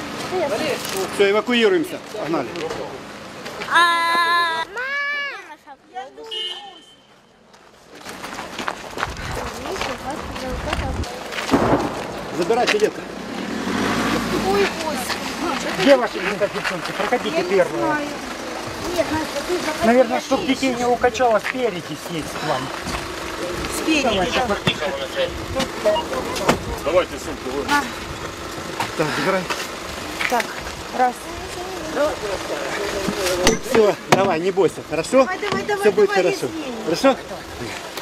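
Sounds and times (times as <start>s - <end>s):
higher voice calling: 3.7s - 5.4s
bus engine idling: 11.1s - 38.0s
people talking: 14.2s - 22.8s, 23.4s - 27.9s, 30.2s - 37.8s.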